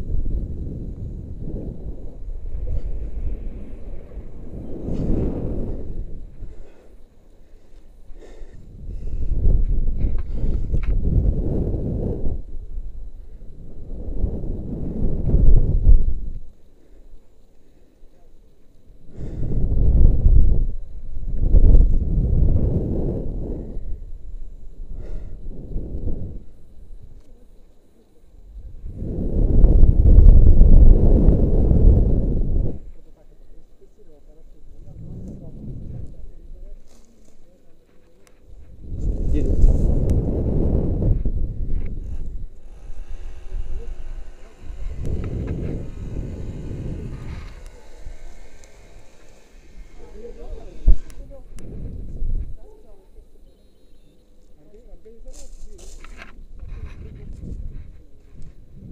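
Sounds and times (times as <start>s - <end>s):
wind rushing over microphone: 0.0s - 17.2s, 18.8s - 27.6s, 28.3s - 58.9s.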